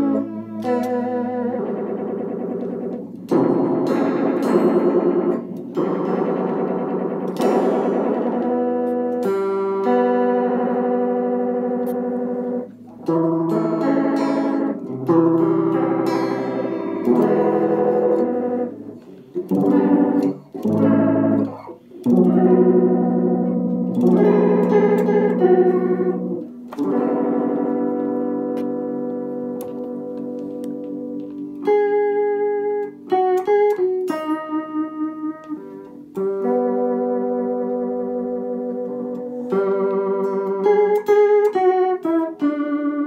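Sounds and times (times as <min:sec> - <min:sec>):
guitar chords with chorus effect: 0:00.0 - 0:43.0.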